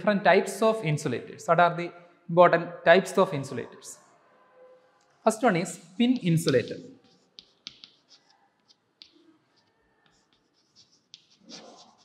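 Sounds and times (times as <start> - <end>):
chalk scratching on blackboard: 6.1 - 12.0.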